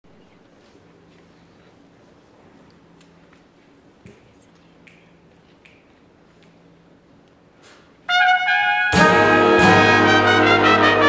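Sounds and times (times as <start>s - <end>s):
soft finger snaps: 4.0s - 6.6s
jazz big band playing: 8.1s - 11.0s.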